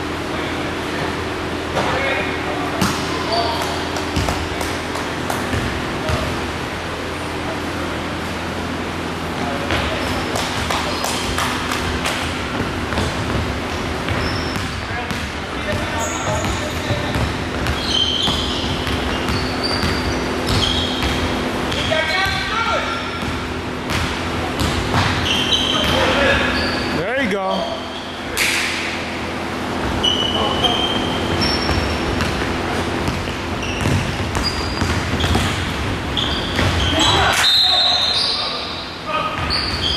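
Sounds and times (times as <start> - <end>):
sneakers squeaking on wooden floor: 9.6 - 28.3, 29.1 - 39.9
basketball dribbling on hardwood: 12.0 - 22.4, 31.7 - 35.9.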